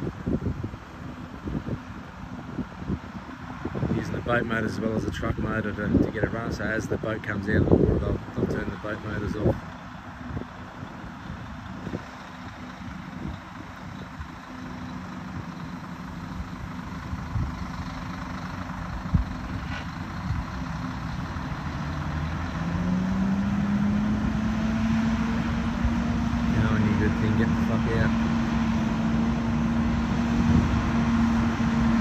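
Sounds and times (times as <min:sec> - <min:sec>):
diesel truck engine under load: 0:00.0 - 0:32.0
boat motors: 0:03.0 - 0:32.0
rising drone: 0:20.4 - 0:32.0.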